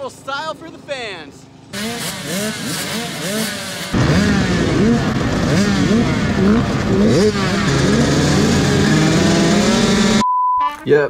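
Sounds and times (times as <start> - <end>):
dirt bike engines running: 0.0 - 10.2
short steady beep: 10.2 - 10.7.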